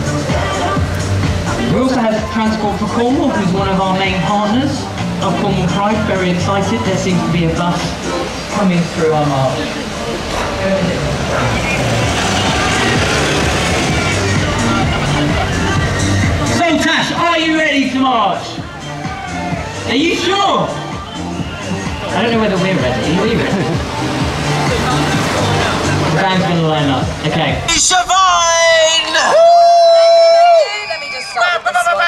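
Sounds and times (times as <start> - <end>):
band playing held low notes: 0.0 - 18.9
background music: 0.0 - 32.0
crowd chatter: 0.0 - 32.0
vehicle engine running: 9.4 - 16.9.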